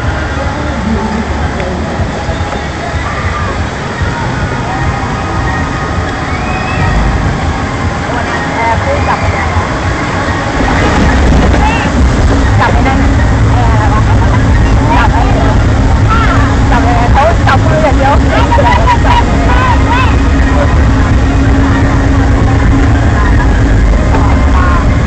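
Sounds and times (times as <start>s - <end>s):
chain lift rumble and hum: 10.5s - 25.0s.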